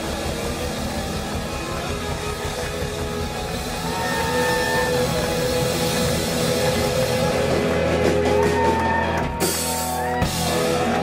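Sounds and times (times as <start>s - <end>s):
live blues-rock band playing: 0.0s - 11.0s.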